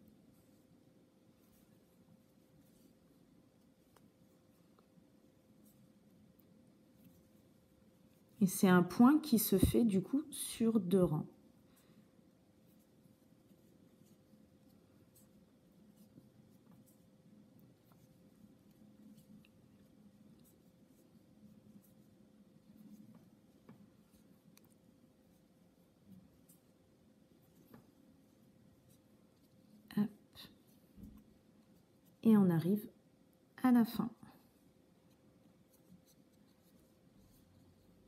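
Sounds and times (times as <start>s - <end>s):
low steady hum: 0.0s - 38.0s
yarn rustling on crochet hook: 0.0s - 38.0s.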